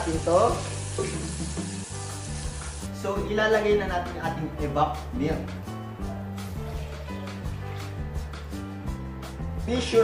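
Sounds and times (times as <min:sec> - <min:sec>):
food sizzling in a frying pan: 0:00.0 - 0:03.0.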